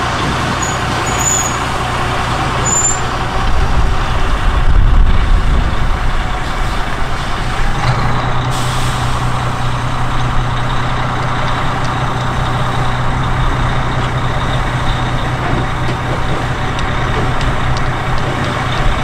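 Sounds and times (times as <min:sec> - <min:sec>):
diesel locomotive engine running: 0:00.0 - 0:19.0.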